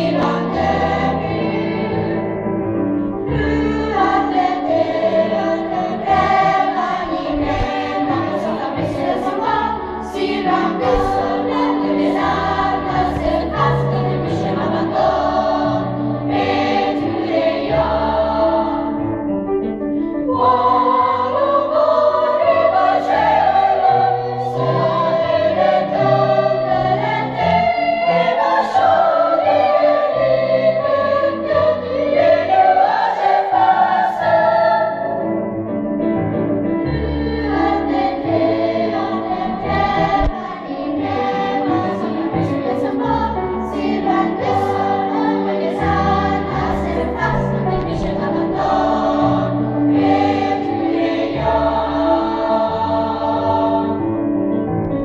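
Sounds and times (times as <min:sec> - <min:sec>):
children's choir singing: 0:00.0 - 0:02.3, 0:03.2 - 0:19.1, 0:20.3 - 0:35.2, 0:36.9 - 0:54.2.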